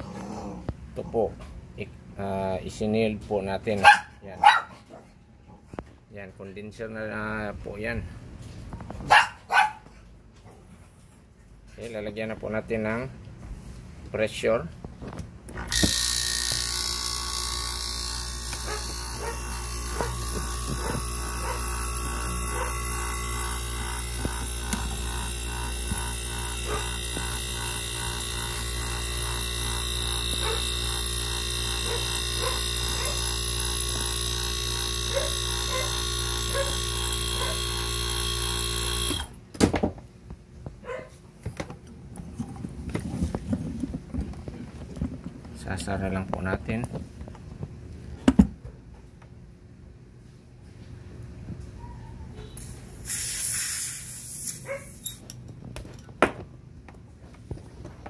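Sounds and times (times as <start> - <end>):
electric compressor running: 15.4 - 39.5.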